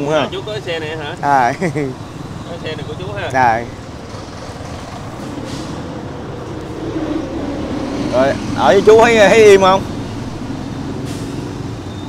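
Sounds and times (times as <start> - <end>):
heavy vehicle engine rumbling: 0.0 - 12.0.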